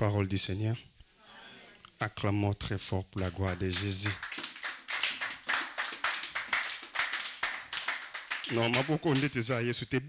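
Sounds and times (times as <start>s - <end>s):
congregation clapping in rhythm: 3.1s - 9.6s.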